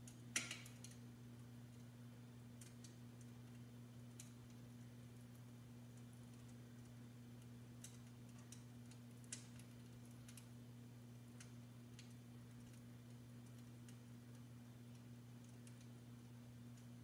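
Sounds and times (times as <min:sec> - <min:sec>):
low electric hum: 0:00.0 - 0:17.0
crackling pops: 0:07.8 - 0:10.5.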